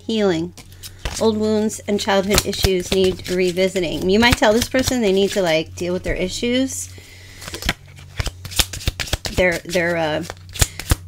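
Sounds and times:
cards shuffling: 0.5s - 5.6s, 7.4s - 11.0s.

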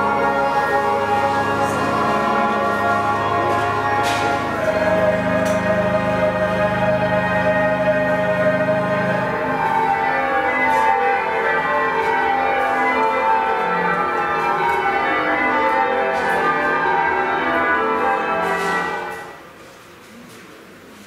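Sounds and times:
church bells ringing over loudspeaker: 0.0s - 19.6s.

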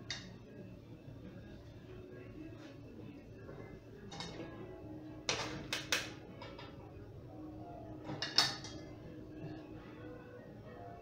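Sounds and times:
soft background music: 0.0s - 11.0s
metal utensils clattering on bowls: 8.1s - 8.9s.

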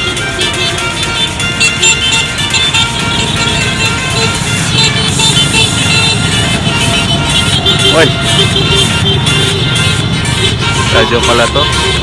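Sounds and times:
motorcycles passing: 0.0s - 12.0s
street traffic passing: 0.0s - 12.0s.

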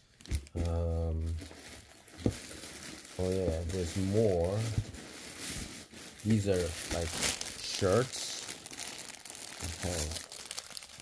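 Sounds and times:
plastic bag crinkling: 0.0s - 11.0s.

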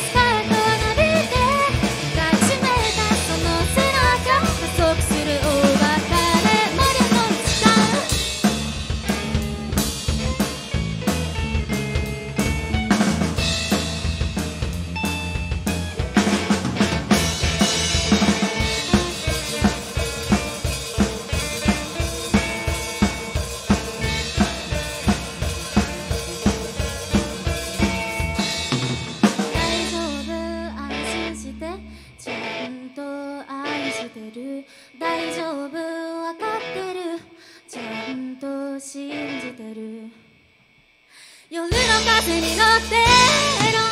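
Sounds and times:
drum kit: 0.0s - 31.2s, 41.7s - 43.9s
rock band playing: 0.0s - 32.7s, 41.7s - 43.9s
guitar and bass notes: 0.0s - 34.2s, 41.7s - 43.9s.

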